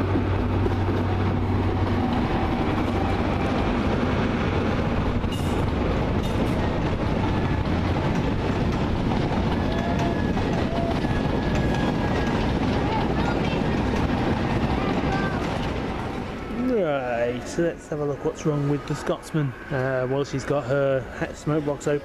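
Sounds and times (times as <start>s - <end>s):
diesel train rumbling on tracks: 0.0s - 22.0s.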